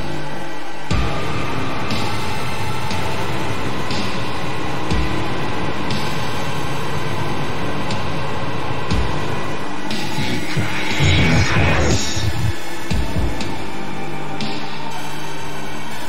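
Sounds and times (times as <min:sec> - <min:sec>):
distorted noise-rock backing track: 0:00.0 - 0:16.0.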